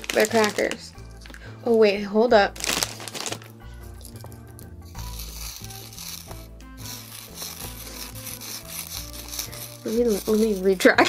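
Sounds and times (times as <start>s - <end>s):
crackers rubbing together: 0.0s - 1.5s, 2.6s - 11.0s
plastic bag rustling: 0.0s - 1.9s, 2.5s - 11.0s
background music with bass: 3.4s - 11.0s.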